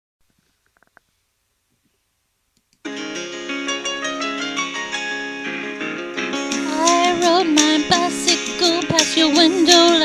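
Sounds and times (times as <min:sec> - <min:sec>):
faint clicks: 0:00.4 - 0:01.1.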